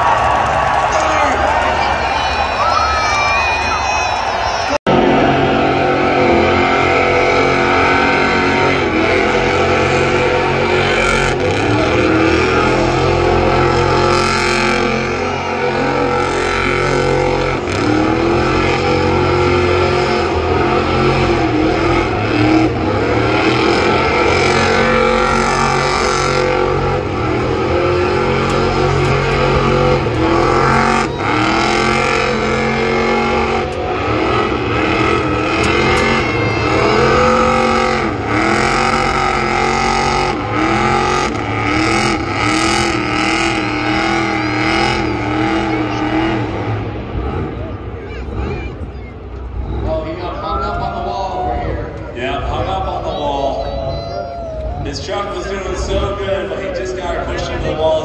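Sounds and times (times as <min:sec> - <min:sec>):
car engine revving hard: 0:04.9 - 0:48.5.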